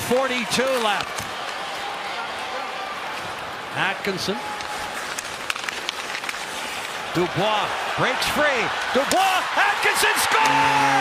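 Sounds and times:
hockey sticks and puck clicking: 0.0s - 1.8s, 4.4s - 7.4s, 8.8s - 10.8s
arena crowd hubbub: 0.0s - 5.3s, 6.8s - 11.0s.

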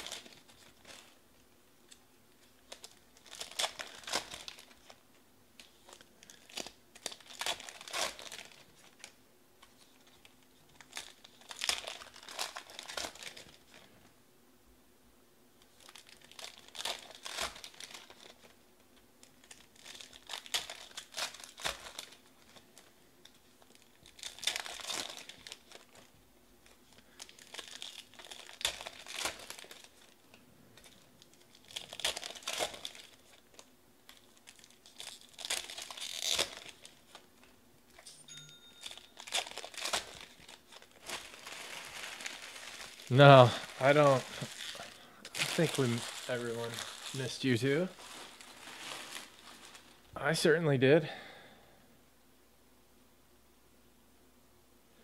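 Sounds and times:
foil wrappers tearing and crinkling: 0.0s - 1.2s, 1.9s - 5.0s, 5.6s - 13.9s, 15.6s - 18.6s, 19.2s - 37.3s, 38.8s - 50.1s.

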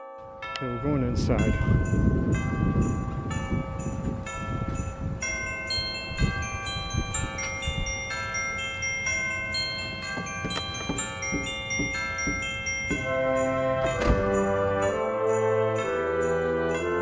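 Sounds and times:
tubular bell melody: 0.0s - 17.0s.

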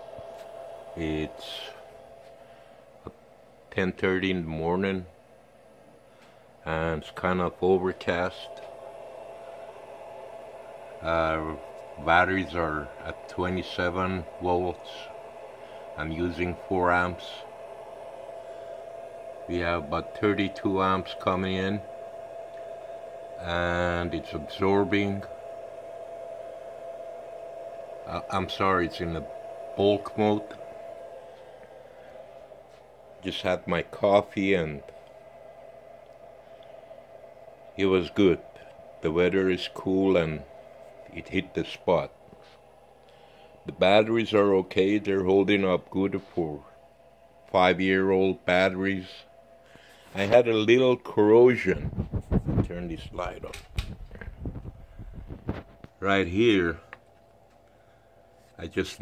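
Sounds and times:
steady mid-pitched whine: 0.0s - 59.0s
even hiss: 6.6s - 46.8s.

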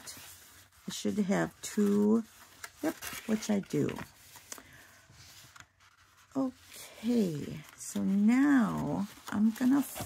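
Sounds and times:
paper rustling on cutting mat: 0.0s - 10.0s.

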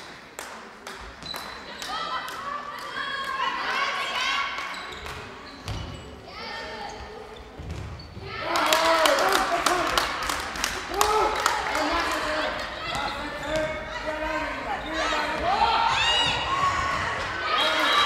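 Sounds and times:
ball bouncing on hall floor: 4.7s - 6.1s, 7.6s - 8.3s, 12.8s - 13.9s
players shouting: 10.8s - 18.0s.

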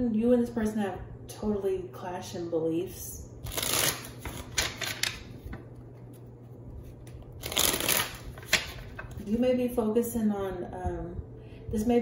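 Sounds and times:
cards being shuffled: 3.4s - 9.2s.

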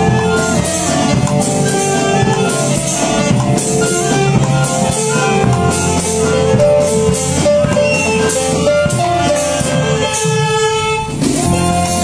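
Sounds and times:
rock band playing: 0.0s - 12.0s
saxophones and clarinet: 0.0s - 12.0s
steady drum beat: 0.0s - 12.0s.

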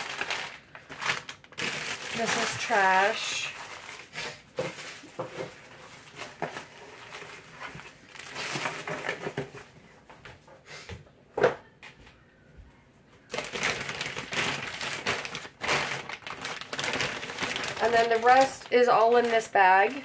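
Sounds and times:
plastic packaging crinkling: 0.0s - 9.2s, 13.3s - 20.0s.

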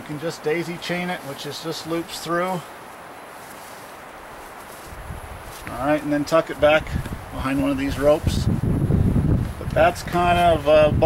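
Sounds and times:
outdoor background hiss: 0.0s - 11.0s
wind noise on microphone: 4.7s - 11.0s.

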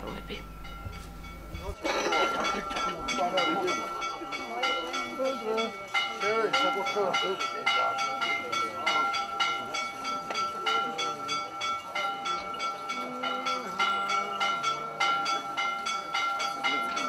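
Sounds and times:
church bells ringing rapidly: 0.0s - 17.0s.

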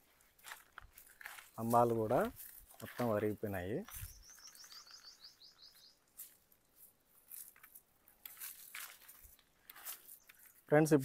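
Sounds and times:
small bird trilling: 4.0s - 6.0s.

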